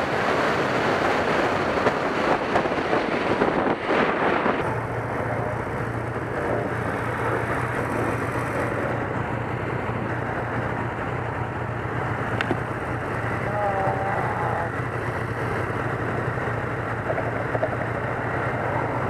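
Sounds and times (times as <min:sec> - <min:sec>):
motorcycle engine idling: 0:04.6 - 0:19.0.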